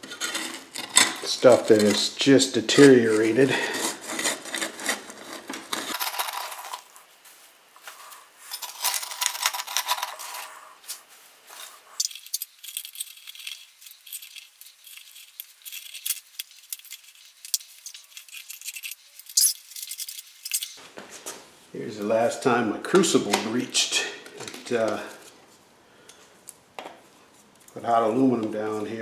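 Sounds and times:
metal scraper scraping and clinking: 0.0 - 6.8.

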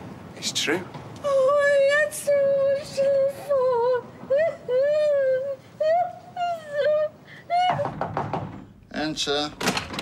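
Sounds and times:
knocking on door: 7.7 - 8.7.

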